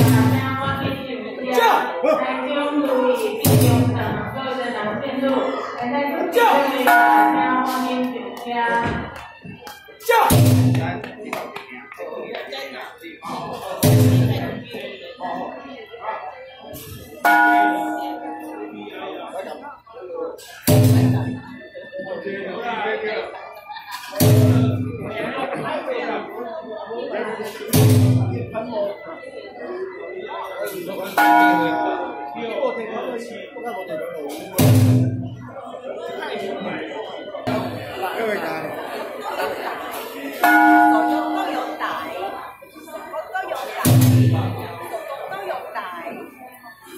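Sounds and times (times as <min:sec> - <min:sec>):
murmur of crowd: 0:00.0 - 0:46.9
voices: 0:00.0 - 0:46.9
metal bell ringing: 0:17.3 - 0:18.9, 0:31.2 - 0:32.6, 0:40.4 - 0:42.0.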